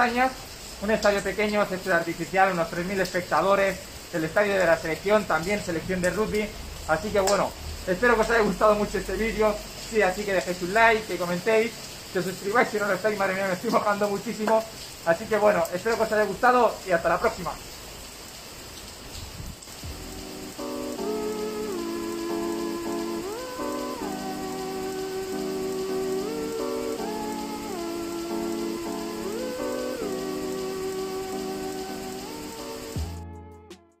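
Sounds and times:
hard rain falling: 0.0s - 33.2s
background music with sliding melody: 19.8s - 34.0s.

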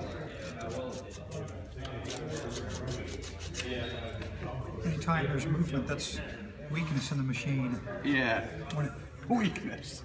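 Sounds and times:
sandpaper scratching on steel: 2.1s - 3.7s.

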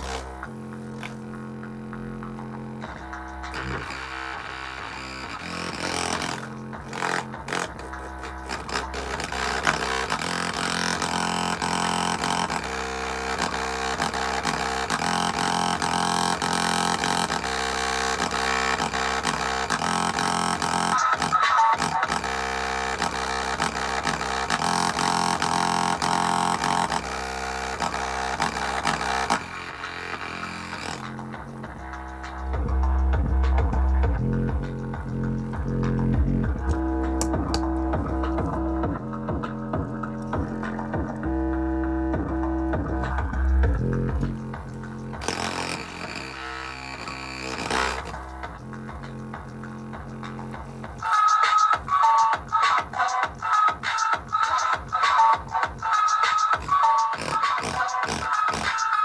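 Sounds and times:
music through bare speaker cone: 0.0s - 59.0s.

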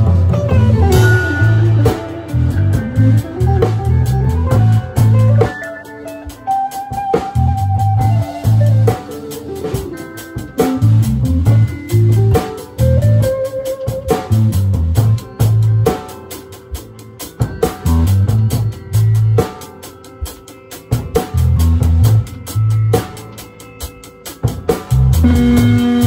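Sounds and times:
bass line: 0.0s - 5.6s, 7.1s - 15.9s, 17.8s - 19.4s, 21.3s - 23.0s, 24.9s - 26.0s
drum strikes: 0.0s - 26.0s
acoustic guitar strummed: 25.2s - 26.0s.

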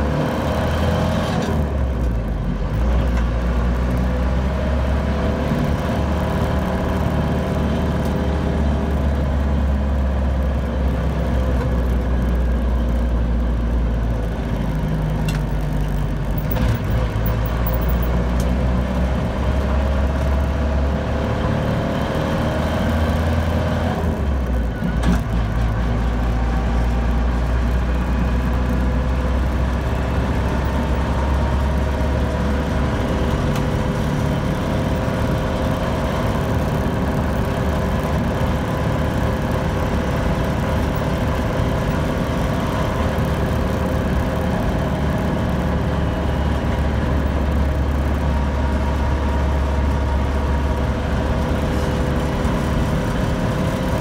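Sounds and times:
diesel engine driving heard from cab: 0.0s - 54.0s.

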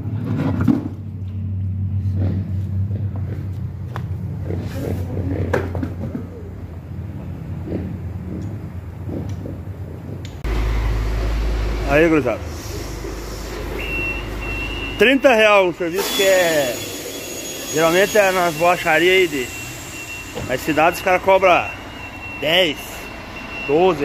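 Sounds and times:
deep steady rumble: 0.0s - 16.0s.

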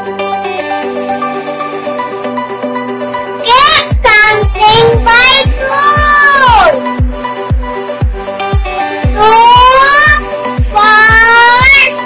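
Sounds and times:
electronic backing track with beat: 0.0s - 12.0s
child singing: 3.4s - 6.9s, 9.1s - 12.0s.

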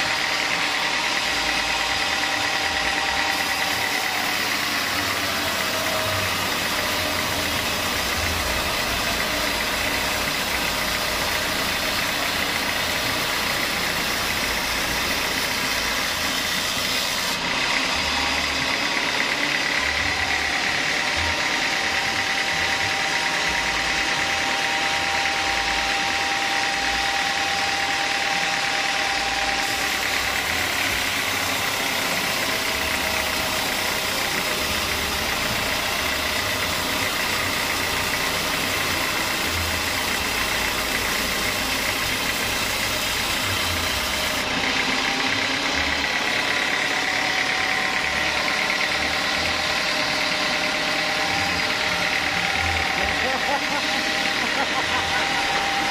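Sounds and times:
band saw cutting timber: 0.0s - 55.9s
machine engine drone: 0.0s - 55.9s.

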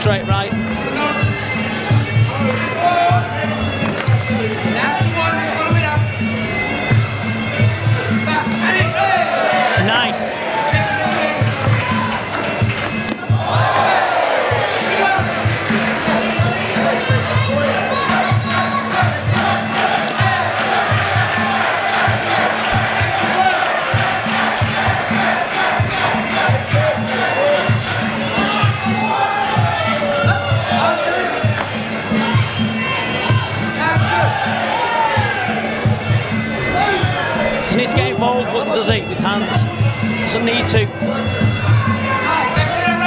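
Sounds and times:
crowd shouting and cheering: 0.0s - 43.0s
ring music with pulsing drumbeat: 0.0s - 43.0s.

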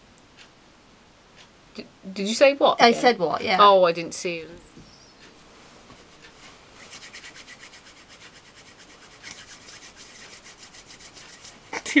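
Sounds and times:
hand rubbing cloth: 5.6s - 11.8s.

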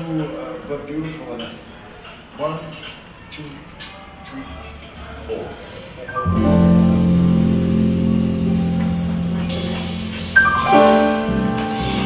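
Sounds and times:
jazz quartet playing ballad: 6.1s - 12.0s.

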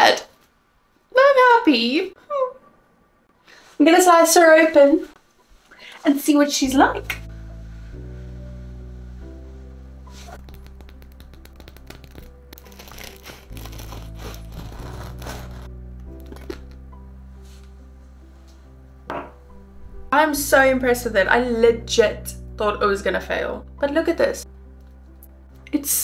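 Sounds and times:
background music: 6.2s - 26.0s
bread knife sawing crust: 13.0s - 15.7s.

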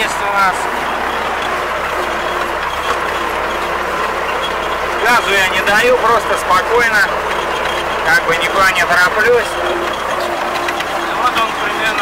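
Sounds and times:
baler mechanical clatter: 0.0s - 12.0s
tractor engine running: 0.0s - 12.0s.

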